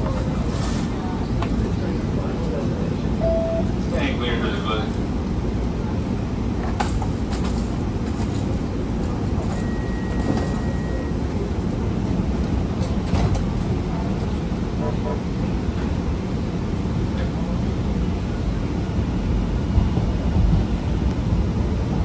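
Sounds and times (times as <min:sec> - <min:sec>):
light rail car rumbling on track: 0:00.0 - 0:22.0
faint high steady tone: 0:03.2 - 0:03.7.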